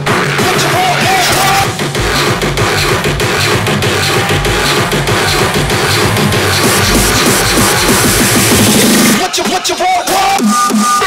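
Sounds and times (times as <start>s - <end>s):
heavy bass: 0.0s - 10.8s
hardcore electronic dance music: 0.0s - 11.0s.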